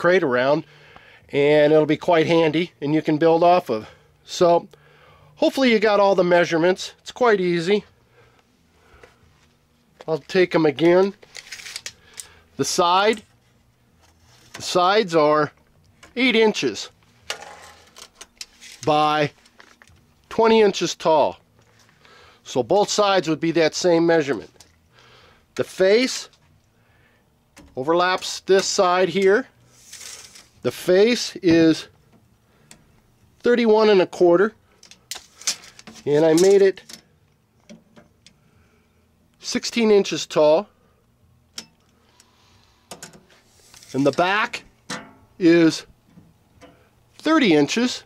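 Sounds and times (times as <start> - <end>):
tape measure blade scraping: 29.7 - 30.6.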